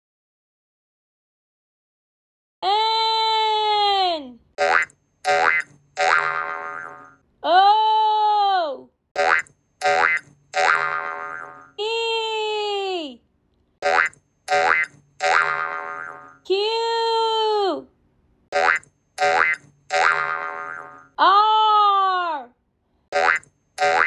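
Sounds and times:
springy cartoon boing: 4.6s - 7.2s, 9.2s - 11.7s, 13.8s - 16.4s, 18.5s - 21.2s, 23.1s - 24.0s.

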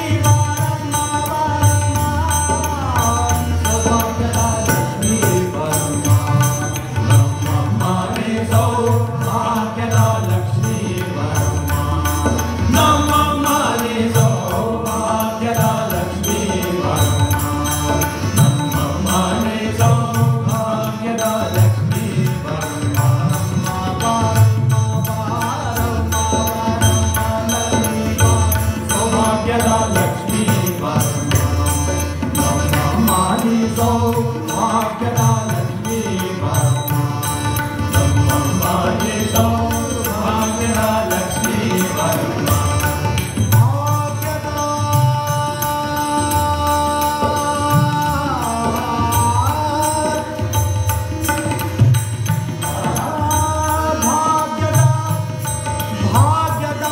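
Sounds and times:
man singing classical vocals: 0.0s - 51.7s, 52.3s - 56.9s
harmonium: 0.0s - 56.9s
tabla: 0.0s - 56.9s
tanpura drone: 0.0s - 56.9s.

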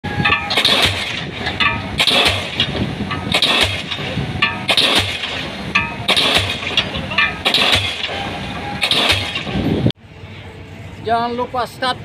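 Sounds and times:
pile hammer heavy blows: 0.1s - 9.8s.

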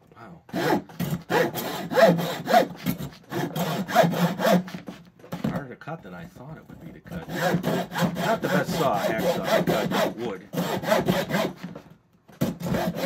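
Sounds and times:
hacksaw cutting through wood: 0.5s - 5.6s, 6.9s - 13.0s.

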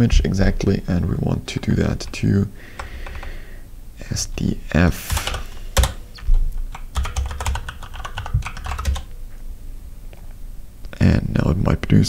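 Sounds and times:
typing on computer keyboard: 2.8s - 3.3s, 5.0s - 6.0s, 6.6s - 9.1s.

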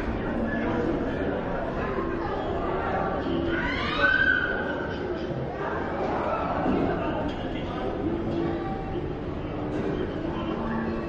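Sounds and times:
indoor crowd hubbub: 0.0s - 11.0s.

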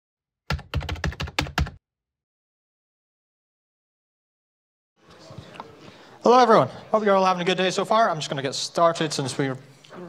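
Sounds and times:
computer keyboard keystrokes: 0.5s - 1.8s.

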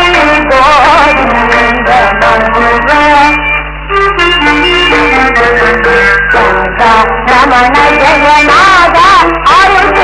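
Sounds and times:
old film song instrumental melody: 0.0s - 10.0s.

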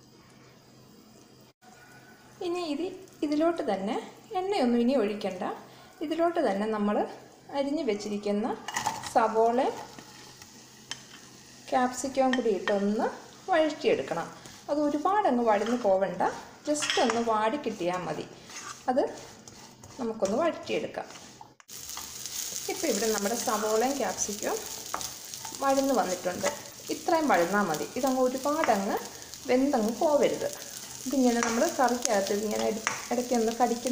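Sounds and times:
vegetables sizzling in hot oil: 0.0s - 33.9s
spatula scraping a pan: 8.7s - 11.4s, 15.6s - 33.9s.

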